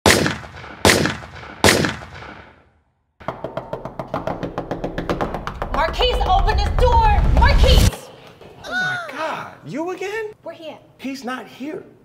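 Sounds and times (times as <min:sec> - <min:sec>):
fast run of knocks: 0:03.2 - 0:07.7
low rumble: 0:05.9 - 0:07.9.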